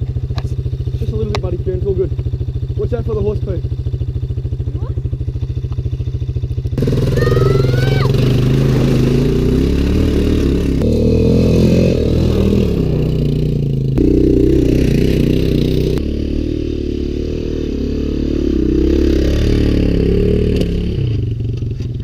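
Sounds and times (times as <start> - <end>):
quad bike engine revving: 0.0 - 22.0.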